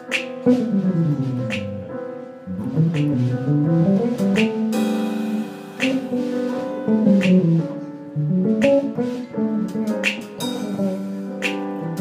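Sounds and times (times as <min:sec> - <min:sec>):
plucked bass solo: 0:00.4 - 0:06.2, 0:06.9 - 0:11.2
drum cymbal strokes: 0:04.7 - 0:06.9.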